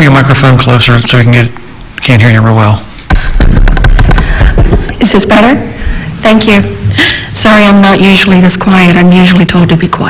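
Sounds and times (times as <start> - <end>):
microphone handling thuds and clicks: 3.1 - 5.0.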